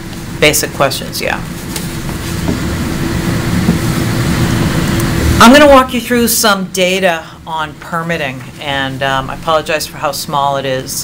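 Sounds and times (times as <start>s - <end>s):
faint constant hum: 0.0s - 11.0s
low room rumble: 0.0s - 11.0s.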